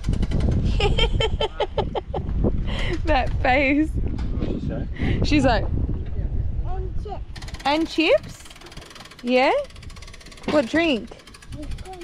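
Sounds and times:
wind buffeting microphone: 0.0 - 12.0
woman laughing: 0.7 - 3.2.

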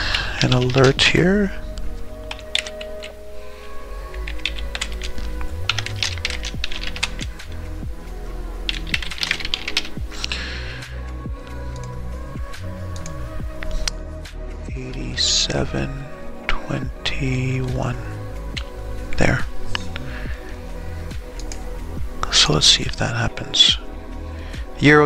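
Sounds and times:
keyboard typing: 0.0 - 1.0, 2.2 - 3.2, 4.1 - 7.6, 8.7 - 10.3
background music: 0.0 - 25.0.

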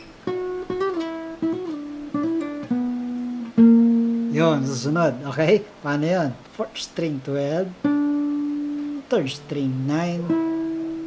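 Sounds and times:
acoustic guitar lead phrase: 0.2 - 11.0.

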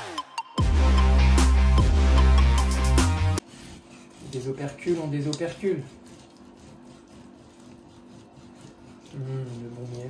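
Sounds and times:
electronic music: 0.0 - 3.4
knife scraping honeycomb wax: 3.4 - 10.0.

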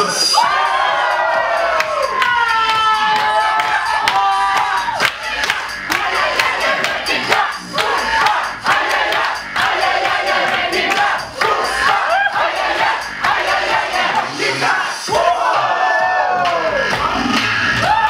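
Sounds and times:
crowd cheering and shouting: 0.0 - 18.0
electro dance music: 0.0 - 18.0.

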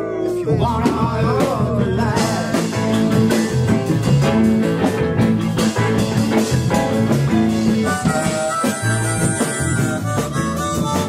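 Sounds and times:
bass guitar: 0.0 - 11.0
drums: 0.0 - 11.0
electric guitar: 0.0 - 11.0
keyboards: 0.0 - 11.0.

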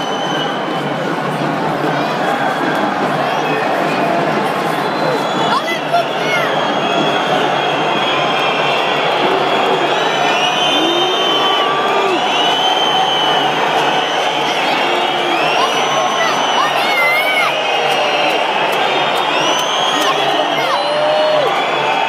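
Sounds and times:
high whistles: 0.0 - 1.1, 4.7 - 22.0
crowd shouting: 1.5 - 22.0.

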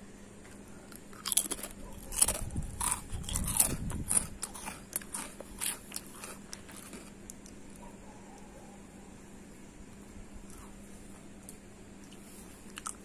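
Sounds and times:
person chewing crunchy snack: 0.8 - 7.8, 12.0 - 13.0.

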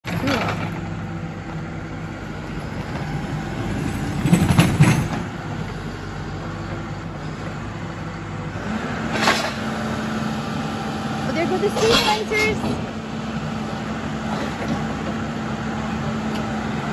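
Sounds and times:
diesel engine running: 0.0 - 16.9.

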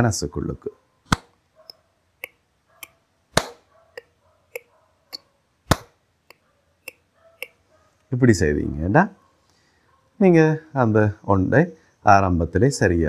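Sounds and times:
hand claps: 3.4 - 3.6, 5.7 - 5.9.

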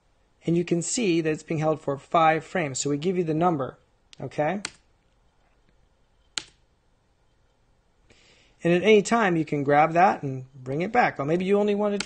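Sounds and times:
computer mouse click: 6.3 - 6.6.

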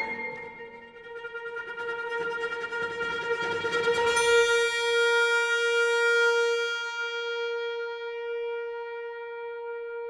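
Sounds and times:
oboe holding a long note: 0.0 - 1.4.

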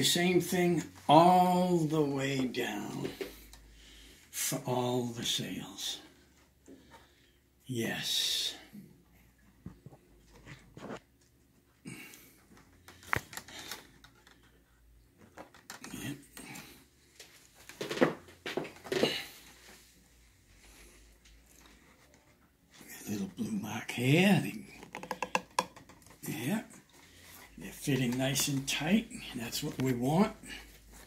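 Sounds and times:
bamboo spars clicking and knocking: 24.8 - 26.2.

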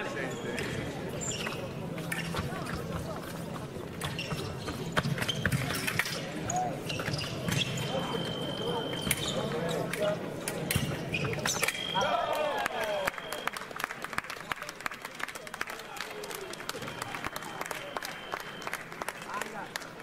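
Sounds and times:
voices in a hall: 0.0 - 20.0.

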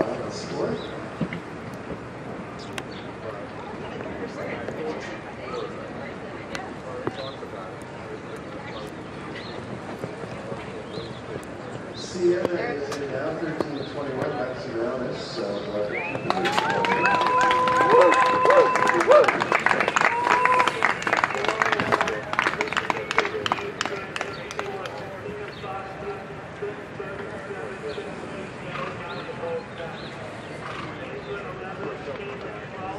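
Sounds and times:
faint distant voices: 0.0 - 32.9
applause: 16.1 - 25.6.

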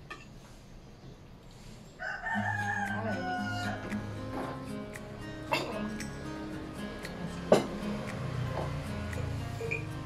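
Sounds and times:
rooster crowing: 2.0 - 4.0.

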